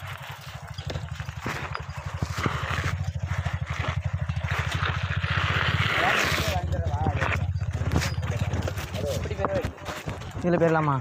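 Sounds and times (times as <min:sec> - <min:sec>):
bicycle on rough dirt track: 0:00.0 - 0:11.0.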